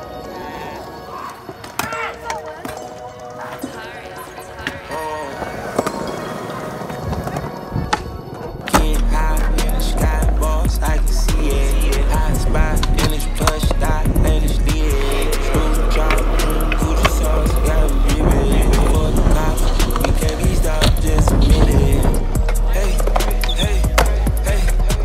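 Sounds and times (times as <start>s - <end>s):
skateboard wheels rolling on concrete: 0.0s - 25.0s
voices: 0.0s - 25.0s
skateboard clacks: 4.5s - 25.0s
music with heavy bass: 8.7s - 25.0s.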